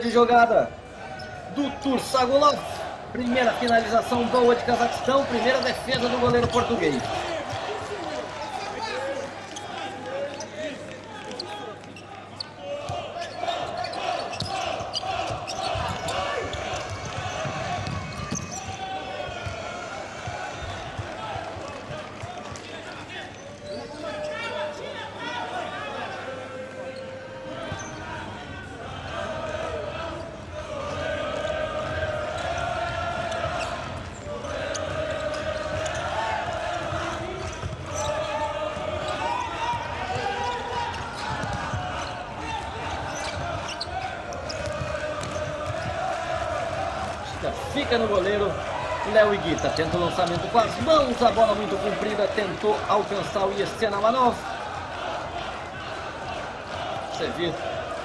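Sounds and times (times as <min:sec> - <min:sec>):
ball kicked and bouncing: 0:16.8 - 0:19.6, 0:41.3 - 0:41.8.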